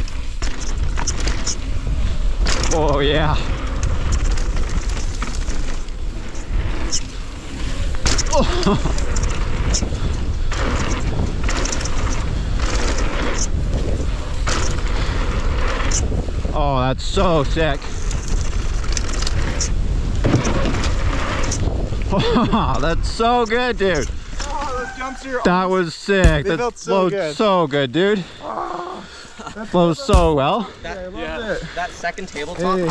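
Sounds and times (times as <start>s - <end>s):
bike clicks and rattles: 0.0s - 25.4s
wind rushing over microphone: 0.0s - 25.6s
bike tyres rolling on dirt: 0.0s - 32.9s.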